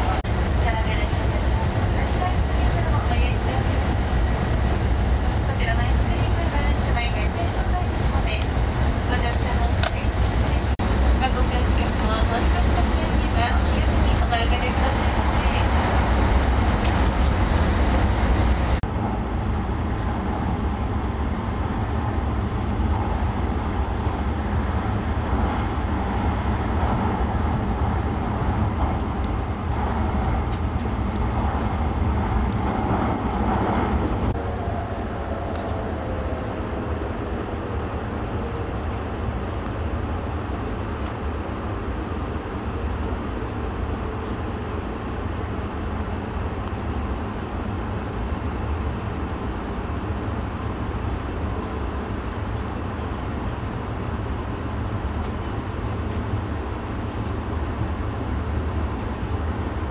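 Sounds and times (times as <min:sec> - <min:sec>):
train running rumble: 0:00.0 - 0:59.9.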